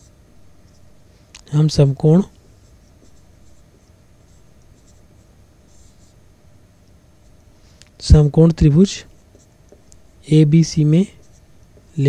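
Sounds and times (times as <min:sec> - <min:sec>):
marker pen squeaking on whiteboard: 0:02.4 - 0:06.2, 0:09.2 - 0:10.1.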